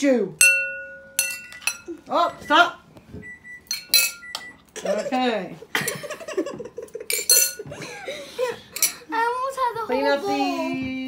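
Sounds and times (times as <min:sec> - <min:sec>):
metal spoon clinking bowls: 0:00.4 - 0:02.0, 0:03.6 - 0:04.5, 0:07.0 - 0:07.7, 0:08.7 - 0:09.1
children giggling and talking: 0:04.6 - 0:11.0.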